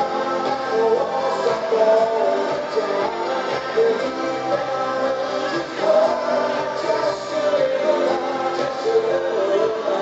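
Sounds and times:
man singing lead: 0.0 - 10.0
synthesizer backing: 0.0 - 10.0.

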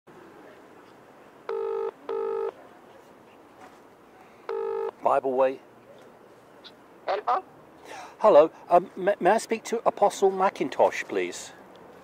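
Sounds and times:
telephone ringing tone: 1.5 - 2.6, 4.5 - 5.0.

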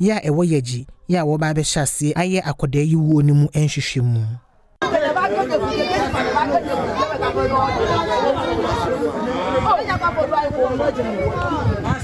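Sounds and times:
babble of overlapping voices: 4.8 - 12.0.

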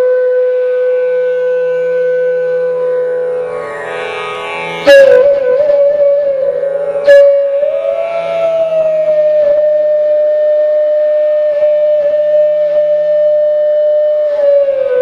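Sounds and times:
bamboo flute long note: 0.0 - 15.0
plucked string: 2.4 - 10.1
low drone: 2.6 - 10.0.

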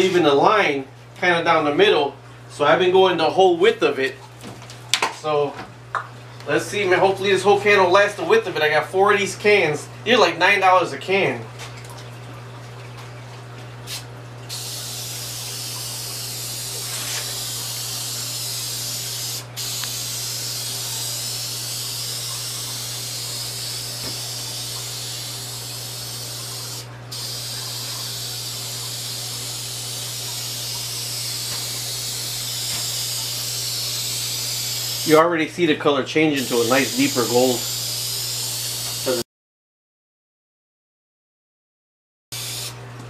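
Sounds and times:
aerosol spray can hissing: 13.9 - 35.1, 36.4 - 39.2, 42.4 - 42.8.

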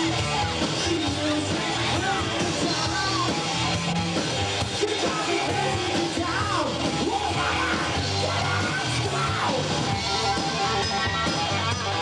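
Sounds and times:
hard rock band playing live: 0.0 - 12.0.

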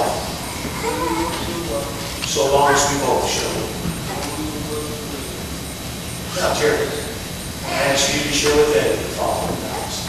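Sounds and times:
loud spoken lines: 0.0 - 5.6, 6.2 - 10.0
quiet voice in echoing church: 0.0 - 5.6, 6.3 - 10.0.

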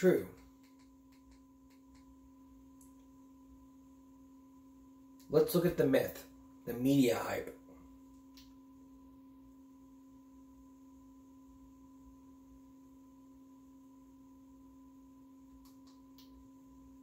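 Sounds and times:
faint steady tone: 0.0 - 17.0.

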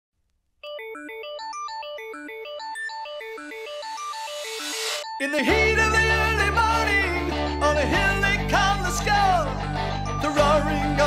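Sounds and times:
synthesizer arpeggio: 0.7 - 11.0.

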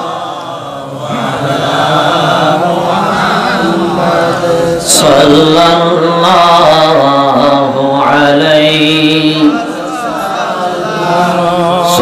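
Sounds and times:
man chanting through a microphone: 0.0 - 12.0.

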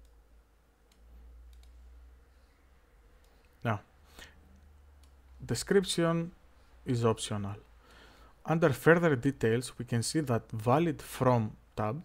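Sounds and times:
low room hum: 0.0 - 12.0
faint mouse clicks: 0.8 - 1.9, 3.2 - 3.6, 4.5 - 5.4.

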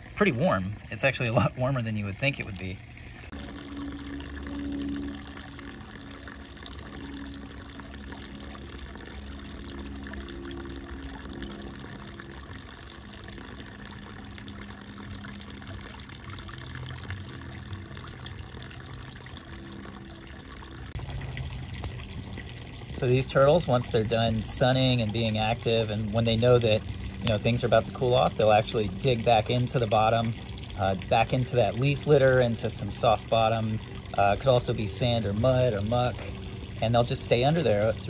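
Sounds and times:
running water: 0.0 - 38.0.

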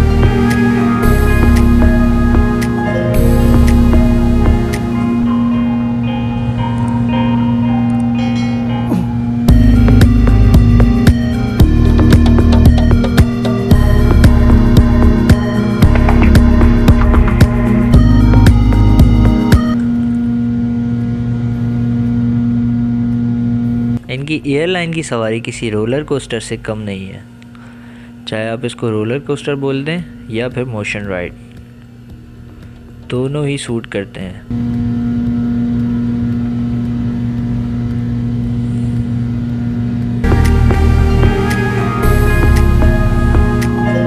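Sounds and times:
background music: 0.0 - 19.8, 40.2 - 44.0
jet engines droning: 0.0 - 44.0
low hum: 0.0 - 44.0.

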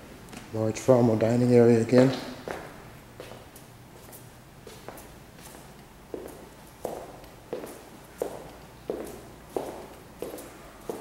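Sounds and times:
footsteps on laminate floor: 2.1 - 11.0.

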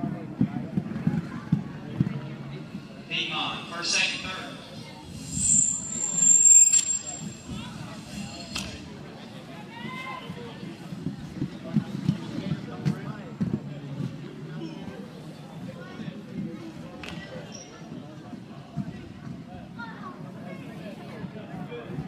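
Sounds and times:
spectators calling out and cheering: 2.6 - 8.9.

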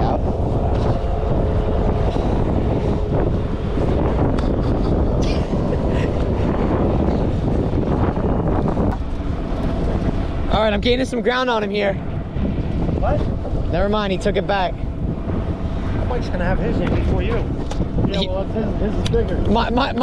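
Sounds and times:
choppy water: 0.0 - 20.0
wind buffeting microphone: 0.0 - 20.0.

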